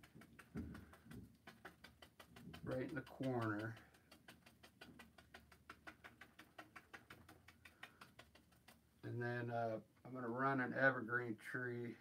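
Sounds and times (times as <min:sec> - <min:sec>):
paintbrush tapping on canvas: 0:00.0 - 0:08.8.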